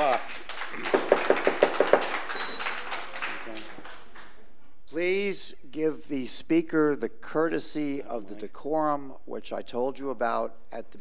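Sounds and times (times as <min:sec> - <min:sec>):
audience hand claps: 0:00.0 - 0:04.5
room noise: 0:00.0 - 0:11.0.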